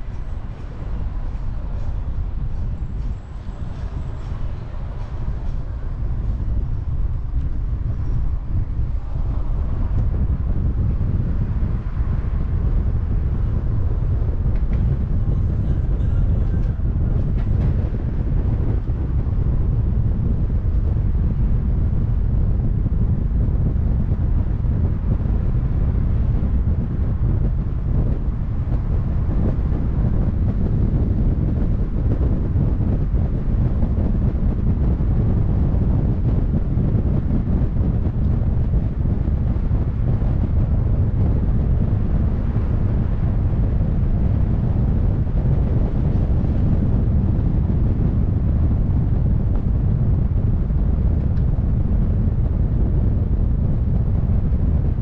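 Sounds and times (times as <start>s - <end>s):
car road noise: 0.0s - 55.0s
wind buffeting microphone: 0.0s - 55.0s.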